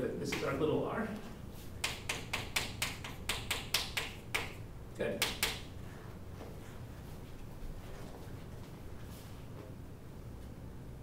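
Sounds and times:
chalk tapping on chalkboard: 1.8s - 4.6s, 5.2s - 5.7s.

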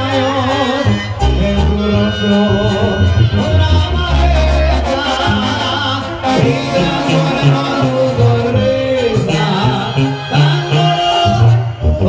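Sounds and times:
brass band playing: 2.2s - 11.5s
tuba low note: 3.6s - 10.8s.

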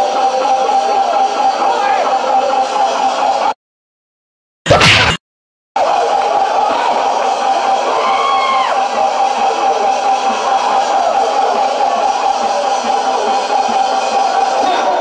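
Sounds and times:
large crowd noise: 0.0s - 3.6s, 5.8s - 15.0s.

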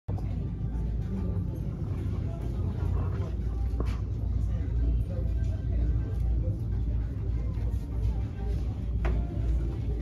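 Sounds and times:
faint background music: 0.1s - 10.0s
indistinct voices: 0.1s - 10.0s.

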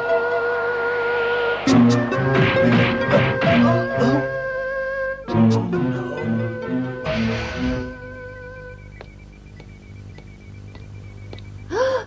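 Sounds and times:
background music: 0.0s - 9.0s.

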